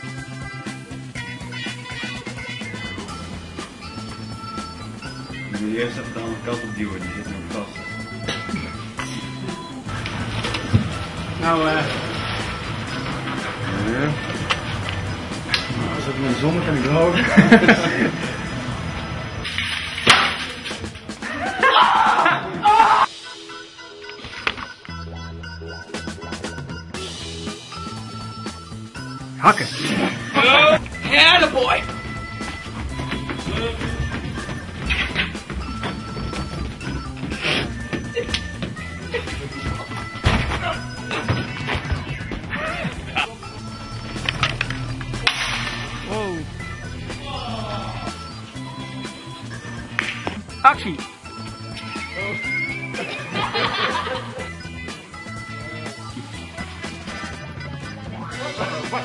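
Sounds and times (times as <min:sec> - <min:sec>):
background music: 0:00.0 - 0:59.0
noisy background: 0:00.0 - 0:59.0
sharp crack: 0:44.2 - 0:46.2.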